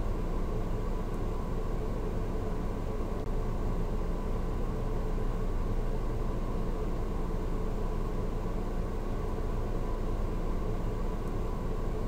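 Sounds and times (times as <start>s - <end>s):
recording hiss and hum: 0.0s - 12.0s.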